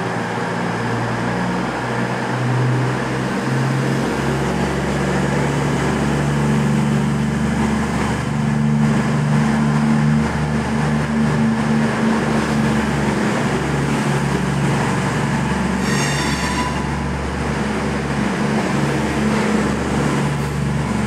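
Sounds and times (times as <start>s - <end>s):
diesel train pulling away: 0.0s - 21.0s.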